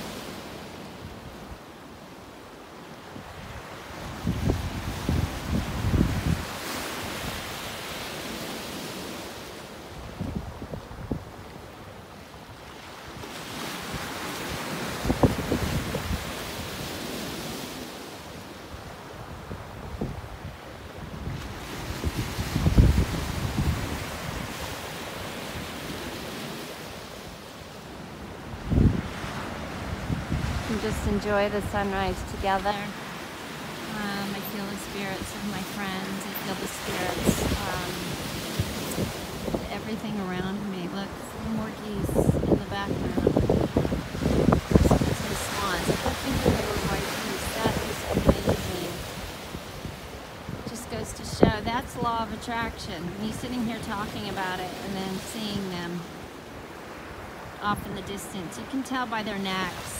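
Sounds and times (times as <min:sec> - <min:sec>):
wind buffeting microphone: 0:03.2 - 0:07.6, 0:10.0 - 0:11.6, 0:13.2 - 0:17.3, 0:18.8 - 0:27.0, 0:28.3 - 0:55.3
surf breaking on rocks: 0:42.1 - 0:50.2.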